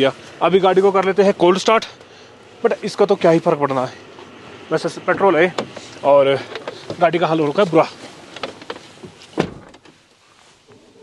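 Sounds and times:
car door shutting with a thud: 0:05.1 - 0:05.9, 0:08.4 - 0:10.0.

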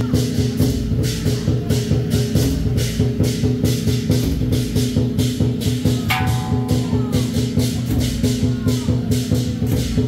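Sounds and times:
drum and cymbal strokes: 0:00.0 - 0:10.0.

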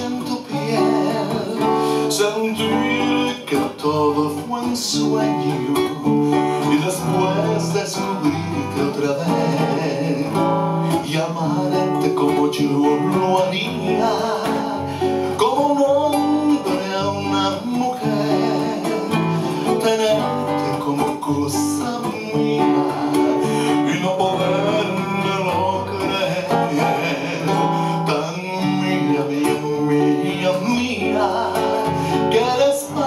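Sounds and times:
classical guitars playing: 0:00.0 - 0:33.0
man singing: 0:00.0 - 0:33.0.

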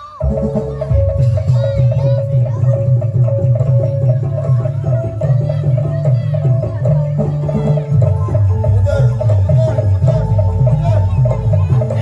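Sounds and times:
gamelan music: 0:00.0 - 0:12.0
hand drum beats: 0:00.1 - 0:12.0.

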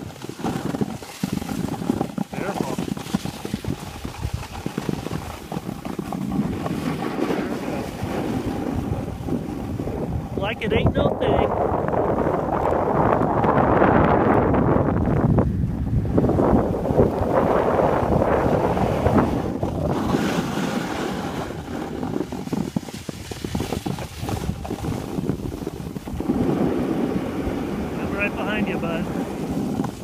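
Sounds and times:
skis sliding on packed snow: 0:00.0 - 0:11.1, 0:16.2 - 0:30.0
wind buffeting microphone: 0:00.0 - 0:30.0.

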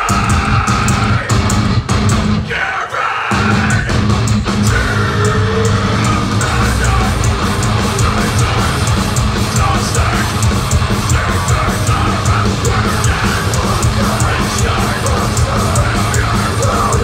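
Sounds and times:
metal band playing live: 0:00.0 - 0:17.0.

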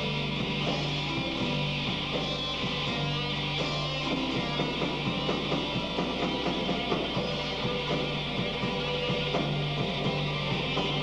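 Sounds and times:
drum kit: 0:00.0 - 0:11.0
electric bass: 0:00.0 - 0:11.0
electric guitar: 0:00.0 - 0:11.0
keyboard: 0:00.0 - 0:11.0.

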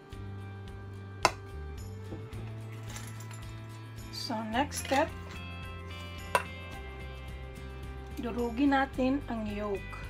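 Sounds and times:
background music with held notes: 0:00.0 - 0:10.0
metal spoon clinking on steel bowl: 0:04.6 - 0:05.5, 0:06.1 - 0:06.7.

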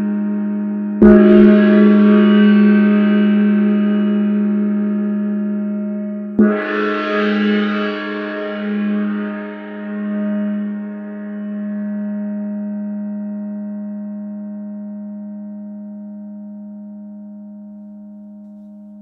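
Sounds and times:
gong ringing: 0:00.9 - 0:12.0.

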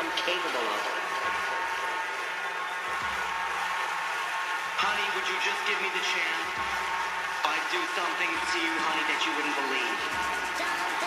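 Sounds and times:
dance track with synth and bass: 0:00.0 - 0:11.0.

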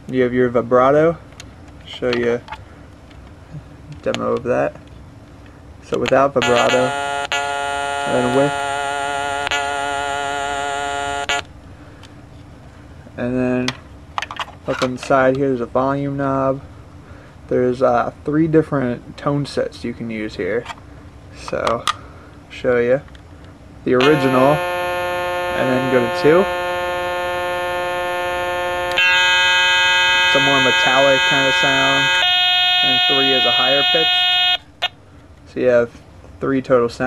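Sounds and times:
buzzy synthesizer note with vibrato: 0:06.4 - 0:11.4, 0:24.0 - 0:34.6.

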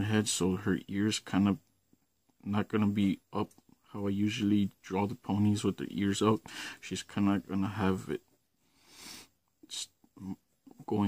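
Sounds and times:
man breathing: 0:06.4 - 0:06.8, 0:08.6 - 0:09.4.

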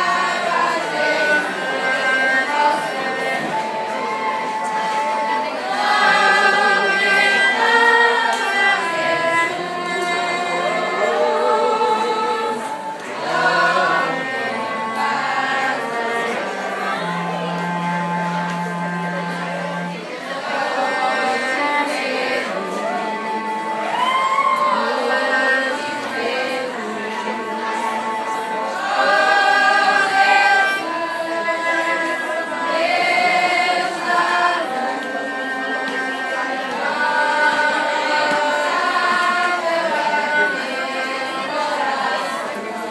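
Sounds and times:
cello low held notes: 0:00.0 - 0:42.9
choir singing in unison: 0:00.0 - 0:42.9.

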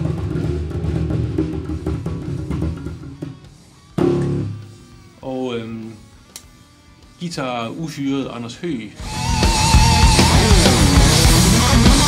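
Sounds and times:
electric bass guitar groove: 0:01.6 - 0:04.8, 0:09.0 - 0:12.0.

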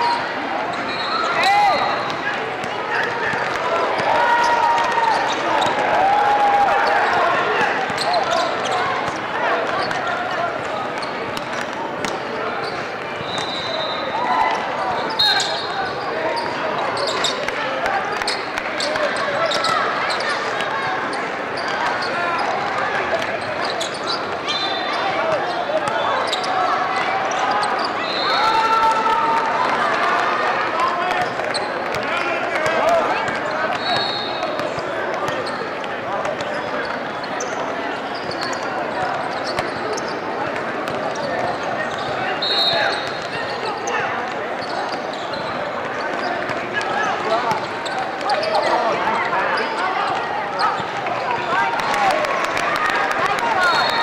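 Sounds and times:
chatter of many voices: 0:00.0 - 0:54.0.

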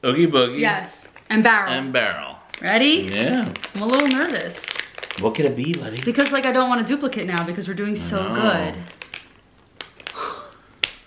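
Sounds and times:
cardboard packaging rustling: 0:02.5 - 0:06.4, 0:08.6 - 0:10.2.

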